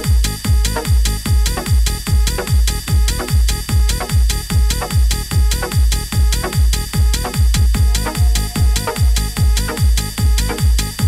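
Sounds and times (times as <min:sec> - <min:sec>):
techno kick drum: 0:00.0 - 0:11.0
ticking hi-hats: 0:00.0 - 0:11.0
sustained high synth tone: 0:07.2 - 0:10.6.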